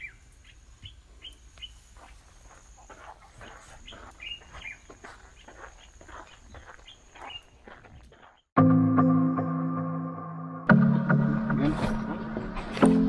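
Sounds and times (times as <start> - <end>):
faint bird chirps: 0.0 - 8.5.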